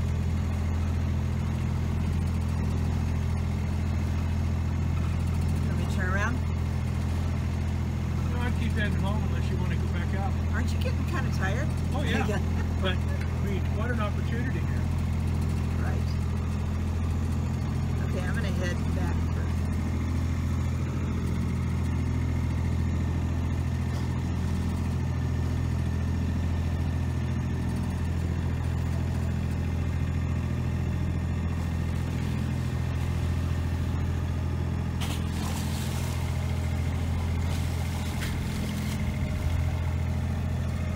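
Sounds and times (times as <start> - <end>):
boat engine droning: 0.0 - 40.9.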